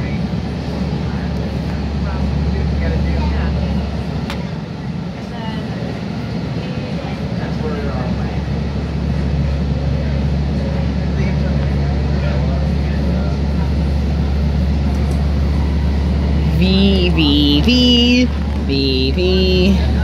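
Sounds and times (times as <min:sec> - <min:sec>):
railcar rumble at speed: 0:00.0 - 0:20.0.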